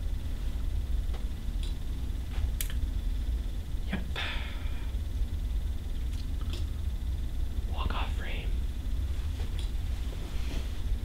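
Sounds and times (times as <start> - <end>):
steady low hum: 0.0 - 11.0
man whispering: 7.6 - 8.6.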